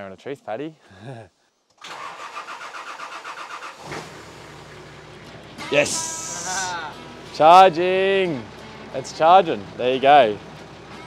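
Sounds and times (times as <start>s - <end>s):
car engine starting and idling: 1.8s - 11.0s.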